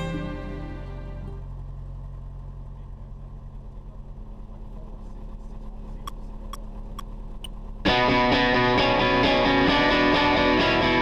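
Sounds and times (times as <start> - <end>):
light aircraft engine droning: 0.0 - 11.0.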